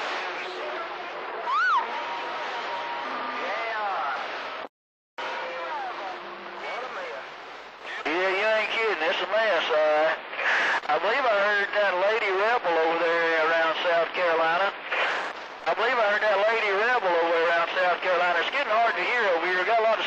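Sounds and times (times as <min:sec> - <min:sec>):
radio hiss: 0:05.4 - 0:20.0.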